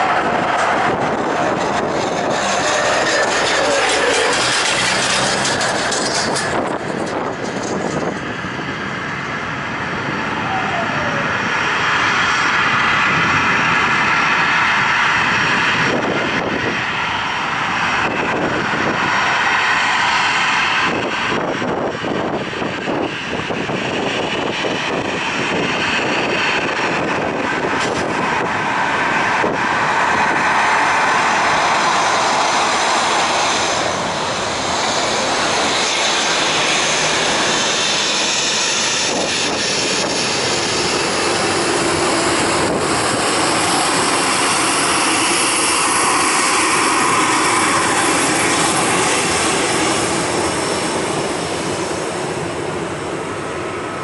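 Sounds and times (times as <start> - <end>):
jet engines running: 0.0 - 54.0.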